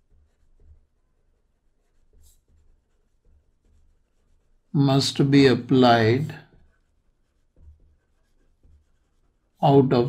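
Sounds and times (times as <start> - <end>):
pen scratching on paper: 0.0 - 10.0.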